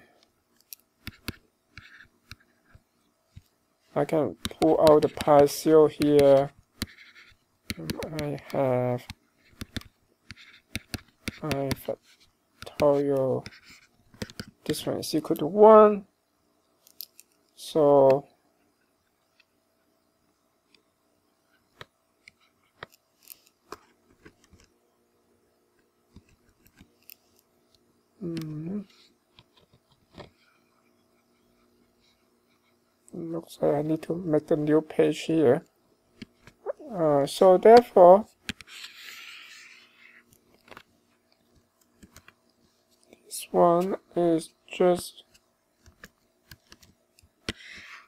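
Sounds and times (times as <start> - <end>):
pen scratching while writing: 1.0 - 2.8, 6.0 - 14.5, 38.5 - 40.2, 45.8 - 48.0
computer mouse clicks: 6.0 - 11.8, 13.4 - 14.6, 41.8 - 43.2, 45.3 - 47.9
stylus tapping on tablet: 6.0 - 11.9.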